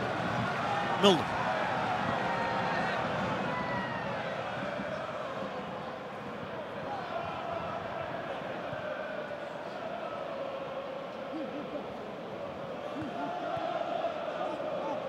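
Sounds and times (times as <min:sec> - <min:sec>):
stadium crowd noise: 0:00.0 - 0:15.0.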